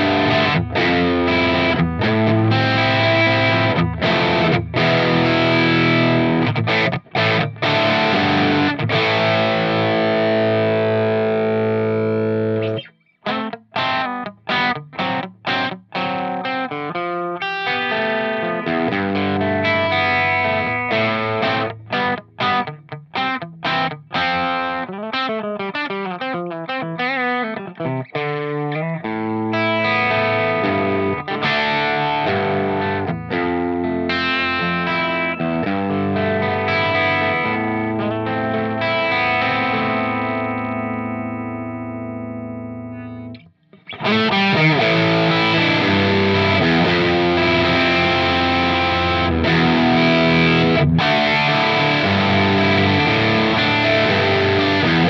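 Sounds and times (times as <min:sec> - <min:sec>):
overdriven electric guitar: 0:00.0 - 0:55.0.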